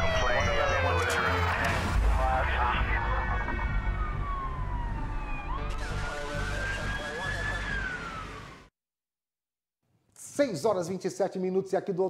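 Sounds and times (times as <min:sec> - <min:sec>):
police siren: 0:00.0 - 0:08.7.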